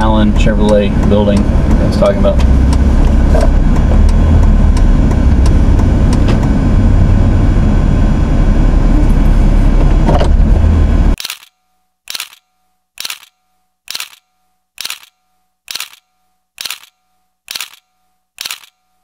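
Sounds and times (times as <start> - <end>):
car road and engine noise: 0.0 - 19.0
camera shutter clicks: 11.2 - 18.8.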